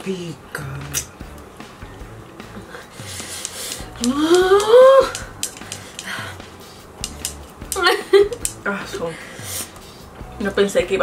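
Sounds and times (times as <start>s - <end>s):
woman whimpering: 4.0s - 5.2s
light clicks: 7.0s - 7.8s.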